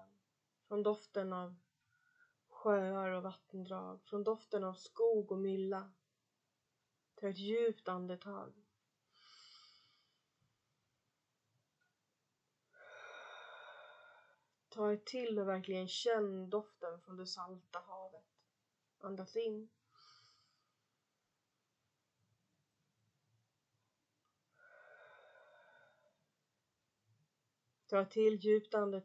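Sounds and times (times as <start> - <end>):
woman breathing deeply: 9.2 - 10.3, 12.8 - 14.5, 20.0 - 20.8, 24.5 - 26.2.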